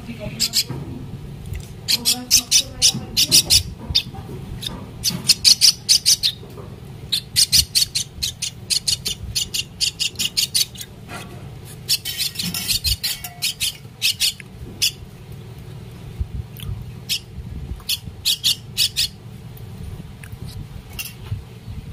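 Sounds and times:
bird chick begging calls: 0:00.3 - 0:00.7, 0:01.8 - 0:06.4, 0:07.1 - 0:11.0, 0:11.7 - 0:15.0, 0:17.0 - 0:19.2.

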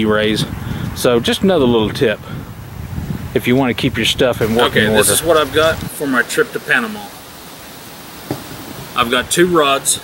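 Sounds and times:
background hiss: 0:00.0 - 0:10.0.

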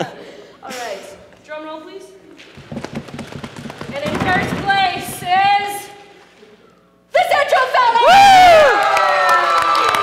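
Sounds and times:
audience stamping and tapping: 0:02.4 - 0:06.0.

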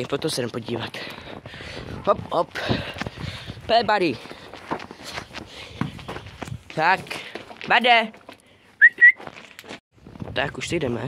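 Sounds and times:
footsteps on snowy rocky ground: 0:00.0 - 0:10.3.

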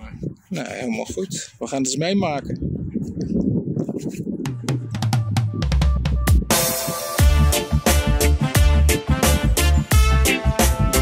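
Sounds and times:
wind buffeting microphone: 0:00.0 - 0:07.2
drum kit music with bass: 0:04.4 - 0:11.0.

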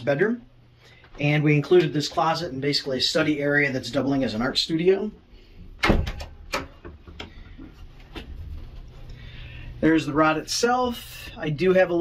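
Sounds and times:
door swinging open with knocks: 0:05.8 - 0:06.8.

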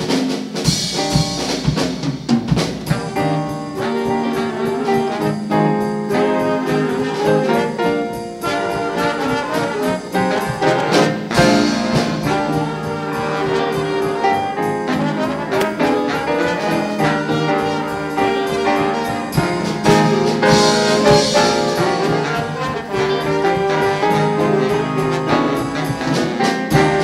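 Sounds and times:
drum kit: 0:00.0 - 0:27.0
piano: 0:00.0 - 0:27.0
saxophones and trombone: 0:02.8 - 0:27.0
upright bass: 0:10.1 - 0:27.0.

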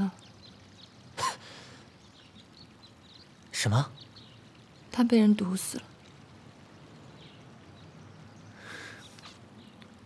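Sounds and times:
faint birdsong: 0:00.0 - 0:10.0.

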